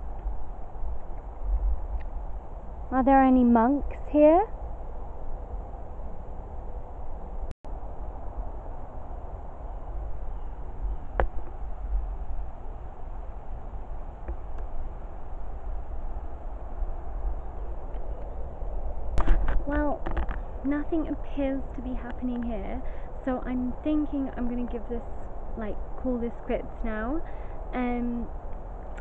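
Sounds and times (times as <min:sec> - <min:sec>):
woman talking: 0:02.9 - 0:04.5, 0:19.6 - 0:20.0, 0:20.6 - 0:28.3.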